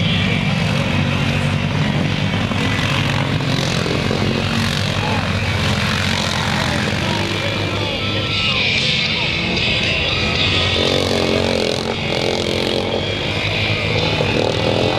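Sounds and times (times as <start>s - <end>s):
atv engines running: 0.0s - 14.9s
crowd voices: 0.0s - 14.9s.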